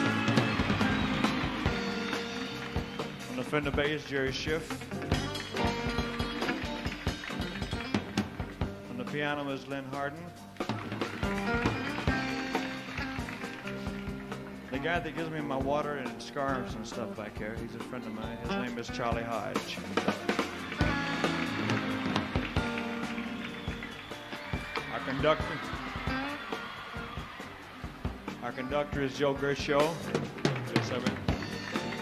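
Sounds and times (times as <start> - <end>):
live band instrumental: 0.0 - 32.0
drum hits: 19.7 - 27.3.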